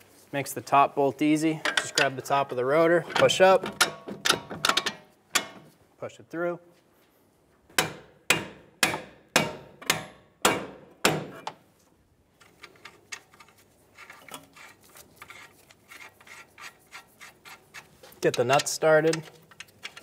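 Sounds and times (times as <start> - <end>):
nut and bolt clicking and rattling: 1.6 - 5.7, 12.4 - 14.6, 15.2 - 20.0.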